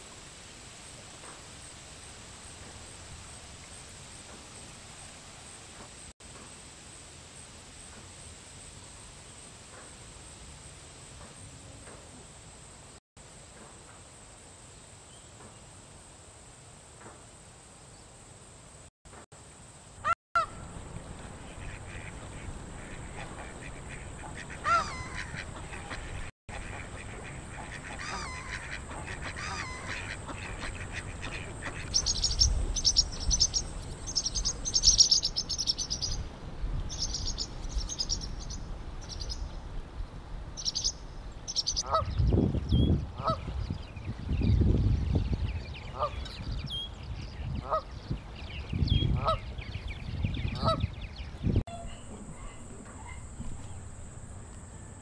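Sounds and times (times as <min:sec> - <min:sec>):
bird calls: 0:20.0 - 0:36.3, 0:45.5 - 0:55.0
geese honking: 0:20.4 - 0:31.9.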